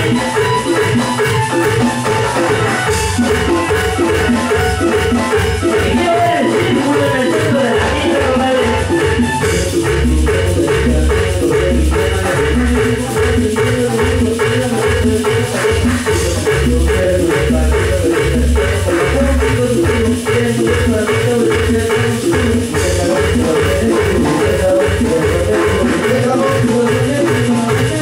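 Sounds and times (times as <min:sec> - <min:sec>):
live band playing latin dance music: 0:00.0 - 0:28.0.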